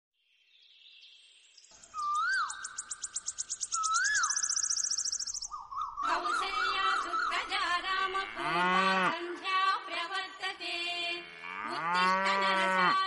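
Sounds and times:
bird whistling notes: 0:01.8 - 0:07.6
high-pitched bird trill: 0:01.9 - 0:07.7.

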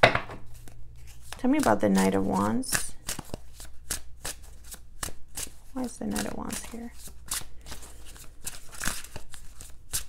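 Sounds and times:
cards being shuffled: 0:00.4 - 0:10.0.

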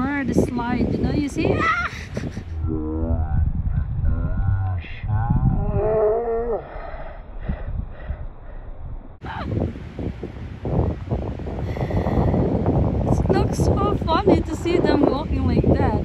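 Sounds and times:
wind buffeting microphone: 0:00.0 - 0:16.0
woman's wavering vocal exclamation: 0:01.4 - 0:02.0.

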